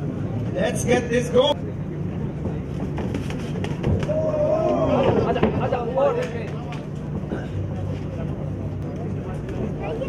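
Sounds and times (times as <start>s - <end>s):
steady low hum: 0.0s - 10.0s
people shouting: 4.0s - 5.4s.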